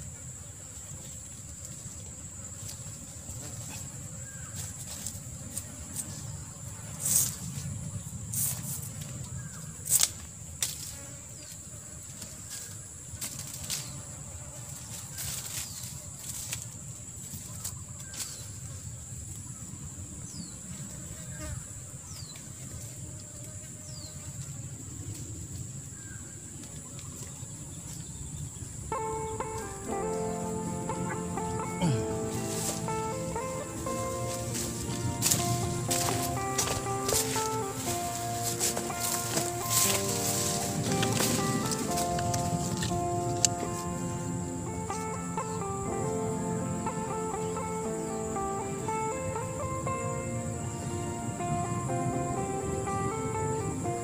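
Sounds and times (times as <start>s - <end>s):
rope rustling in dry leaves: 12.1s - 18.6s, 31.6s - 44.0s
high-pitched insect drone: 28.5s - 54.0s
music with sustained notes: 28.9s - 54.0s.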